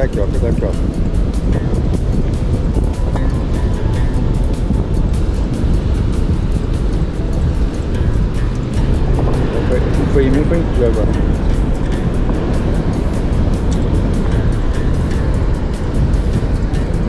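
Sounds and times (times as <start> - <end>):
beach surf: 0.0 - 17.0
music playing: 0.0 - 17.0
wind: 0.0 - 17.0.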